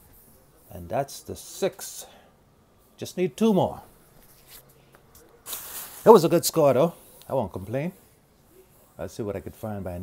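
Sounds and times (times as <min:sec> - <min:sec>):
man speaking: 0:00.7 - 0:02.2, 0:03.0 - 0:03.9, 0:06.0 - 0:08.0, 0:08.9 - 0:10.0.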